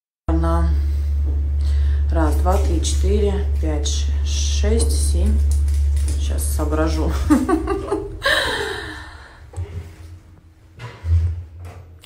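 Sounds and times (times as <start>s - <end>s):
woman gasping exhale: 8.2s - 9.6s.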